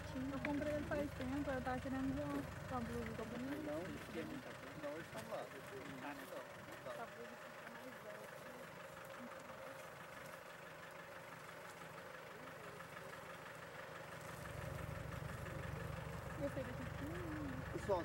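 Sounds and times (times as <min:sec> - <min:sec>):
distant small engine running: 0:00.0 - 0:18.0.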